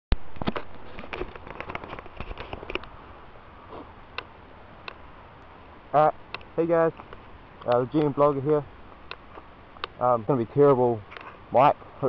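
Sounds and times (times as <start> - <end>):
camera microphone handling crackles: 0.3 - 3.0, 11.0 - 11.4.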